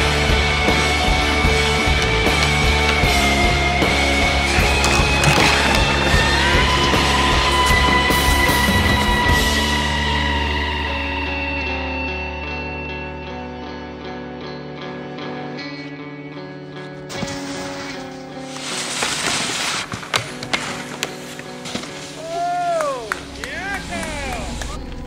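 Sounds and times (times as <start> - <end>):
snowboard scraping across snow: 16.9 - 22.6.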